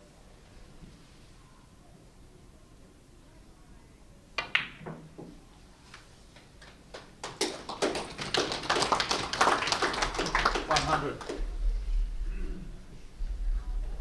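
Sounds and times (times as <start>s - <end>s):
ball dropping into pocket: 4.4s - 5.4s
billiard balls clacking: 4.4s - 5.4s
cue striking ball: 4.4s - 5.4s
audience applauding: 6.9s - 11.4s.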